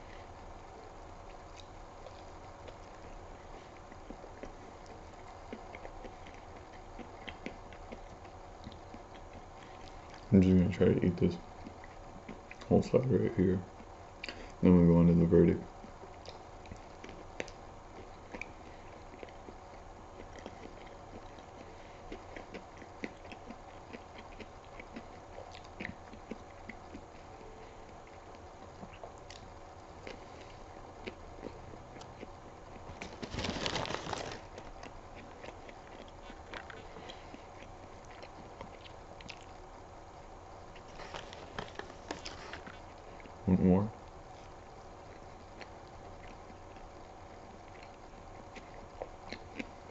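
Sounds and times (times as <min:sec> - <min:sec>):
person chewing food: 0:00.0 - 0:10.6, 0:11.3 - 0:12.8, 0:13.7 - 0:14.6, 0:15.8 - 0:43.4, 0:44.0 - 0:49.9
paper wrapper rustling: 0:32.9 - 0:34.7, 0:40.9 - 0:42.8.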